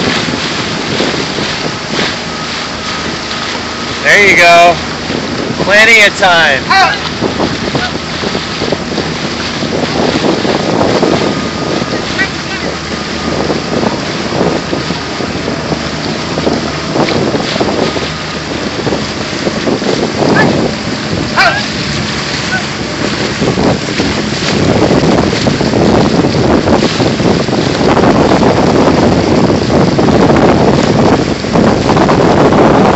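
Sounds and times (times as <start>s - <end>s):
water splashing from paddling: 0.0s - 32.9s
wind buffeting microphone: 0.0s - 32.9s.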